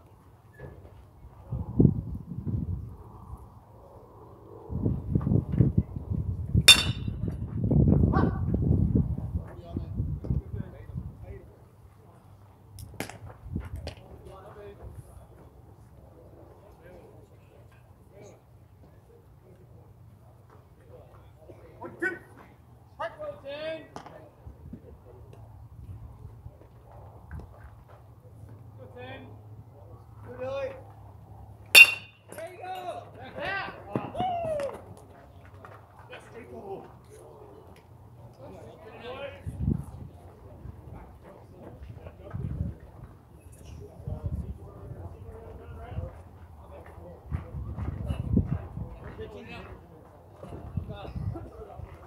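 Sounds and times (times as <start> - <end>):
metal bat ringing: 6.7 - 7.2, 31.8 - 32.4.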